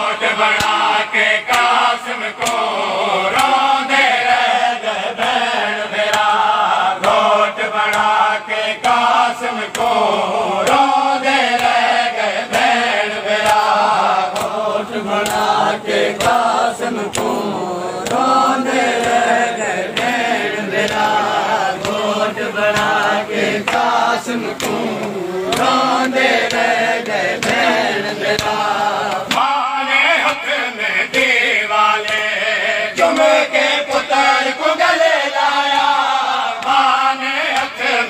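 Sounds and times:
men chanting together: 0.0 - 38.0
chest-beating slaps: 0.5 - 0.9, 2.4 - 3.6, 9.7 - 21.2, 22.6 - 29.5.

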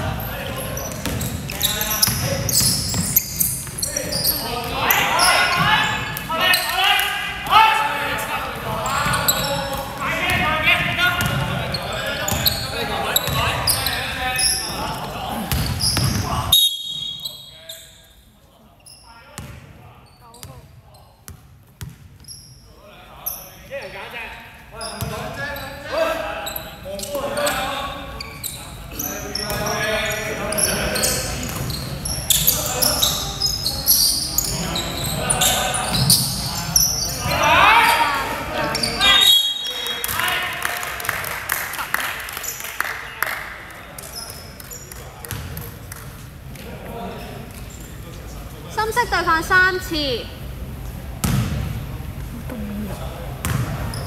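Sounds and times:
players calling out: 0.1 - 17.5.

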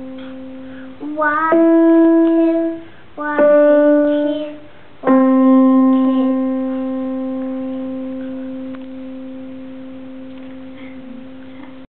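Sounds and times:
piano note ringing: 0.0 - 11.8.

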